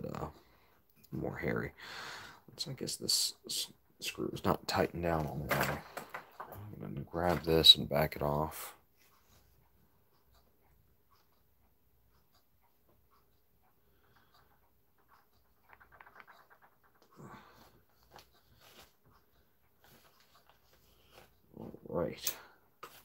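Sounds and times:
strained breaths: 1.7s - 2.5s, 13.1s - 15.2s.

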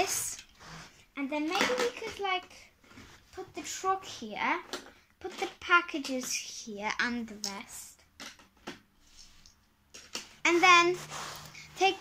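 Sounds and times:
plastic bricks clicking: 8.1s - 8.9s.

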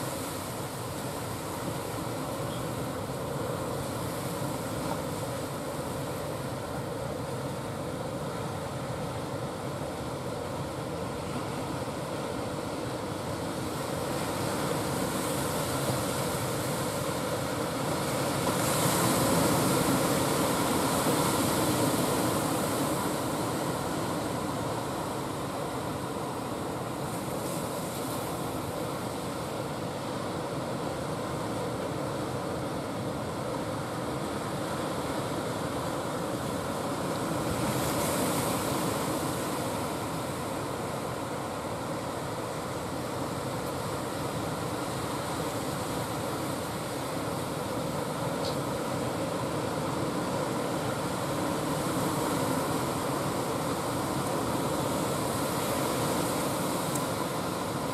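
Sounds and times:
sea and air noise: 0.0s - 57.9s.

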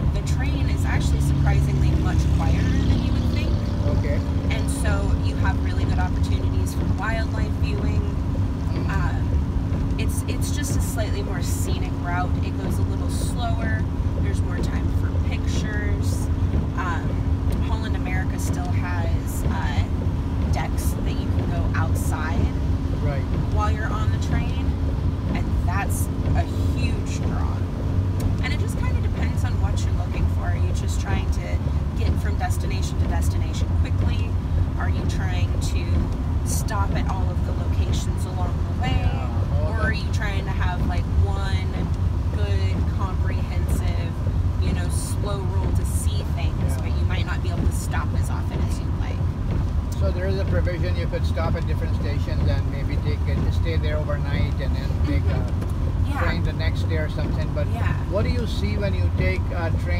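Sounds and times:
engine and road drone in van: 0.0s - 59.9s.

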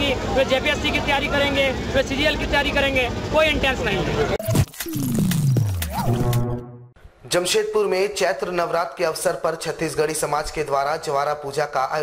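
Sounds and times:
electronic stinger with falling tone: 4.4s - 7.0s
sharp clicks: 4.5s - 6.5s.

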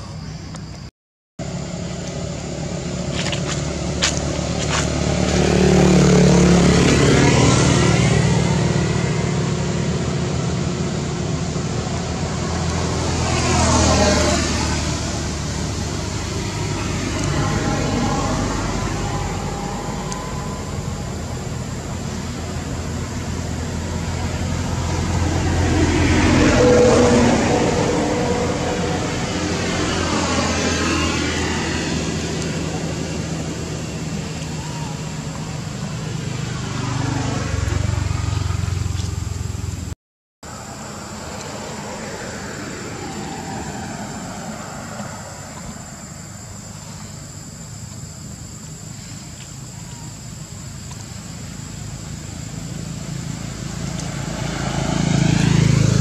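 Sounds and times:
cars passing by: 0.0s - 56.0s
motorbikes passing by: 1.4s - 56.0s.

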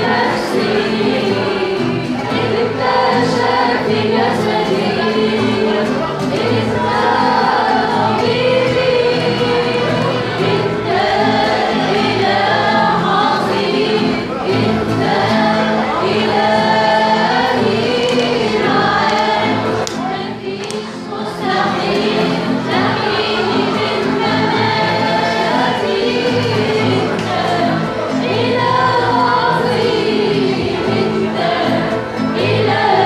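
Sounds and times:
guitar: 0.0s - 33.0s
voices singing a hymn: 0.0s - 33.0s.

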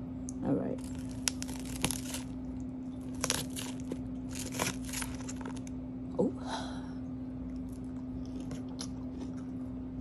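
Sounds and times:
crisp lettuce crackling: 0.7s - 5.8s.

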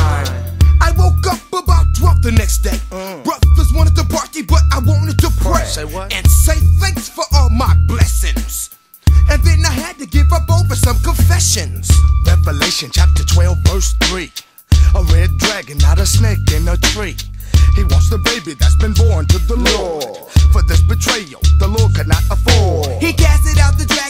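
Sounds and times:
rapping over a beat: 0.0s - 24.0s.

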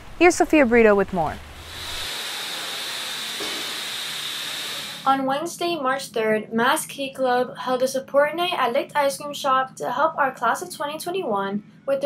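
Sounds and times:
liquid nitrogen hissing: 1.5s - 5.2s.

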